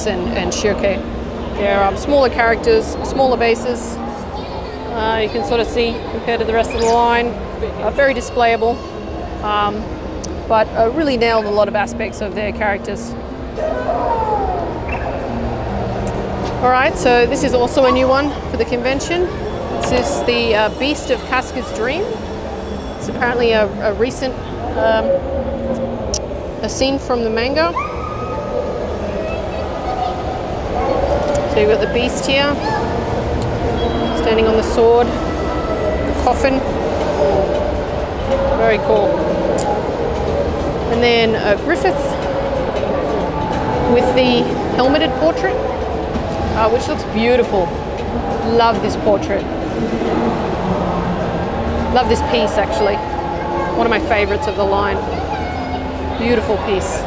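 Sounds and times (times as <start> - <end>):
crowd and hall rumble: 0.0 - 57.0.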